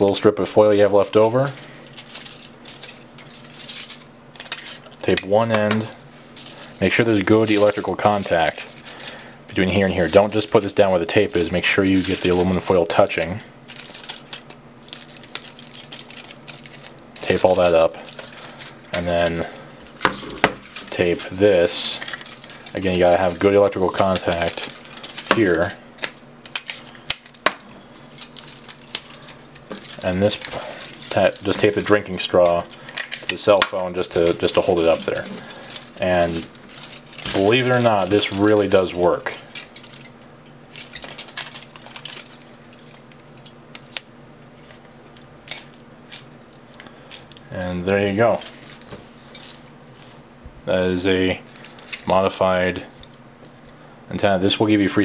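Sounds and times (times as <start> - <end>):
aluminum foil crinkling: 0.0 - 5.2, 5.8 - 50.2, 51.1 - 53.8.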